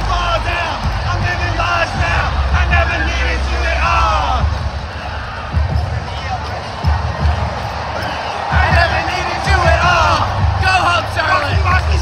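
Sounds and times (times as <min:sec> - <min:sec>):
music with heavy bass thumps: 0:00.0 - 0:06.2
large crowd noise: 0:00.0 - 0:12.0
voices shouting: 0:00.0 - 0:12.0.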